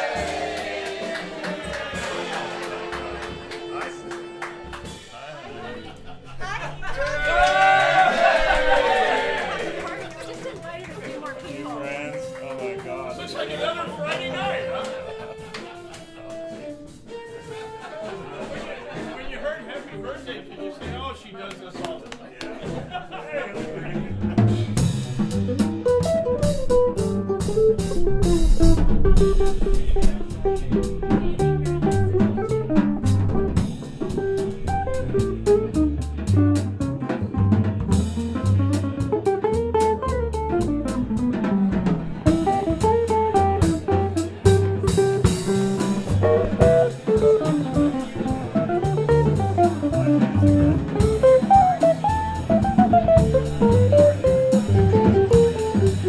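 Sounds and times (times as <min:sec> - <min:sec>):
drum kit with cymbals: 0:00.0 - 0:06.4, 0:07.6 - 0:56.0
jazz guitar lines: 0:00.0 - 0:07.4, 0:08.2 - 0:21.2, 0:23.6 - 0:56.0
walking bass: 0:21.8 - 0:56.0.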